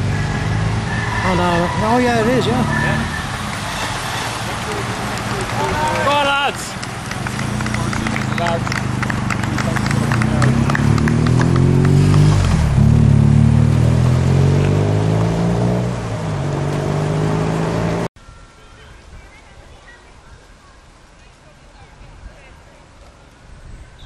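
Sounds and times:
bicycles clicking: 3.2 - 12.5
motorcycle engine accelerating: 7.1 - 18.1.

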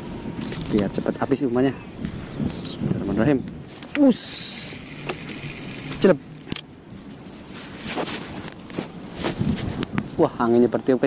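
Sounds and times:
fishing line hissing off reel: 4.1 - 6.1
faint reel clicks: 4.4 - 6.6.

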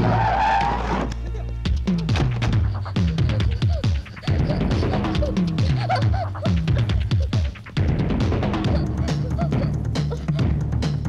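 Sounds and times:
tyres screeching: 0.0 - 10.4
background film music: 0.0 - 11.0.

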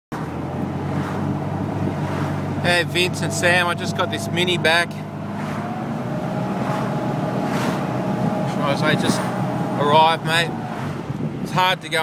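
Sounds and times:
car engine running: 0.1 - 12.0
road and wind noise: 0.1 - 12.0.

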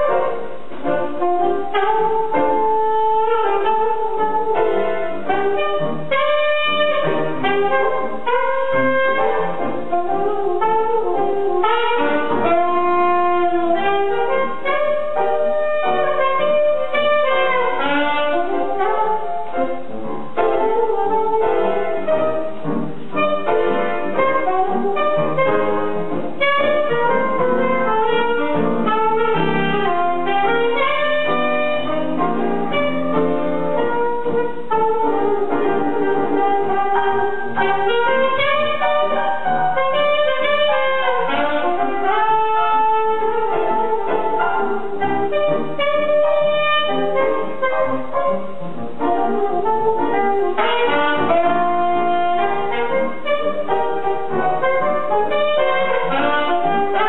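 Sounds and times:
alto saxophone: 0.0 - 57.0
grand piano: 0.0 - 57.0.

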